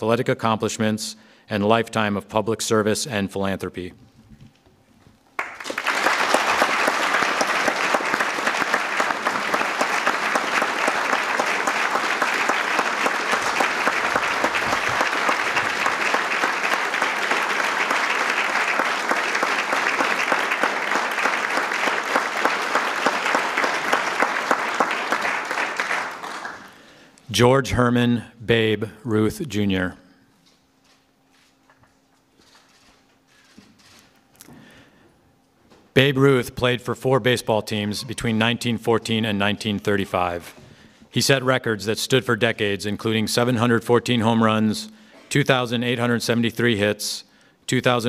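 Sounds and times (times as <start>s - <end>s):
audience applauding: 5.4s - 27.0s.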